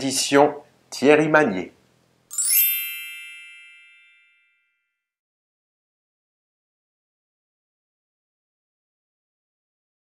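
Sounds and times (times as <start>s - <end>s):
bright bell-like chime: 2.3s - 5.1s.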